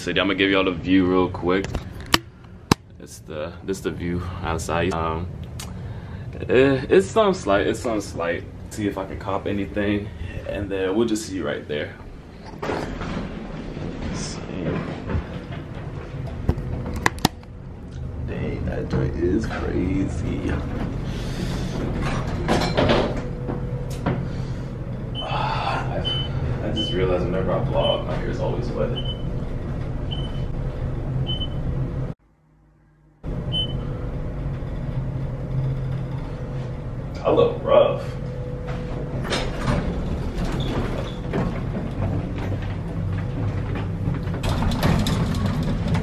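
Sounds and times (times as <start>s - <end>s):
elevator humming: 0.0s - 46.0s
elevator clicks and rattles: 12.4s - 18.1s, 38.3s - 46.0s.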